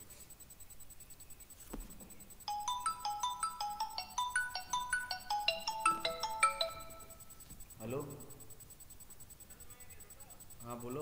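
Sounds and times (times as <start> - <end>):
mobile phone ringtone melody: 2.4 - 7.4.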